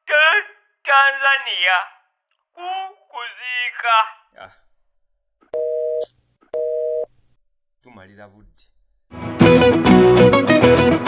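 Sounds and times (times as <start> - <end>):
telephone busy tone beeps: 5.6 - 6.0, 6.6 - 7.1.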